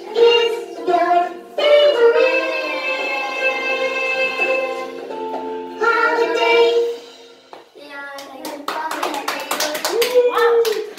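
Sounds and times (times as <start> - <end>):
girls singing over backing track: 0.0 - 7.6
hand clapping: 7.6 - 10.9.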